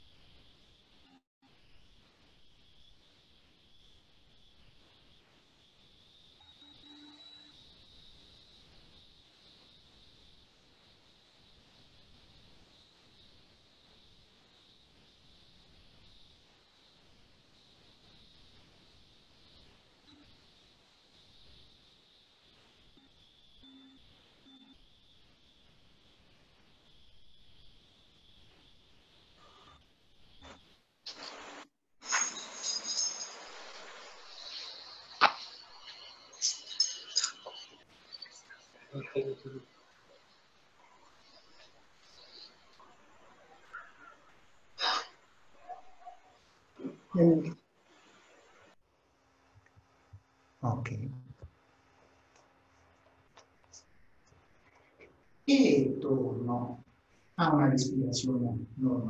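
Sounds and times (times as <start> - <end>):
faint high hiss: 0.0 - 59.0.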